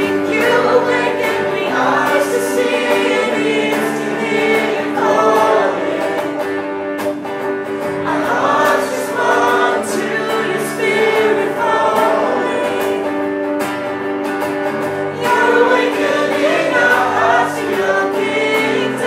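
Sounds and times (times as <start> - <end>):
woman singing: 0.0 - 5.7, 15.2 - 19.0
electric guitar: 0.0 - 19.0.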